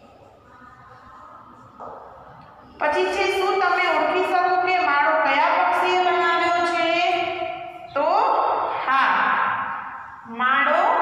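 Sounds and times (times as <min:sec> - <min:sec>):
woman speaking: 0:02.8 - 0:11.0.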